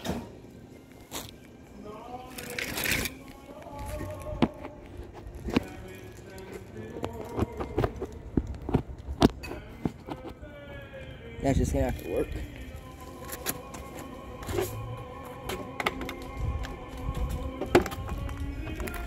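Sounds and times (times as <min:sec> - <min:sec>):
faint music: 0:00.0 - 0:19.0
background voices: 0:01.6 - 0:19.0.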